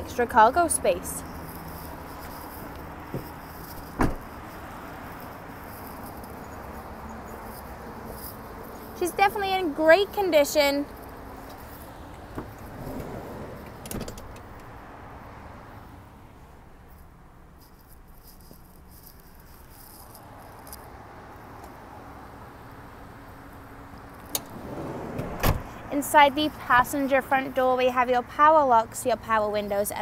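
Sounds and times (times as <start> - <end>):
car door latch clicks: 3.9 - 4.3, 13.7 - 14.7, 24.3 - 25.7
car door latch clunk: 3.9 - 4.3, 12.3 - 14.5, 24.3 - 25.7.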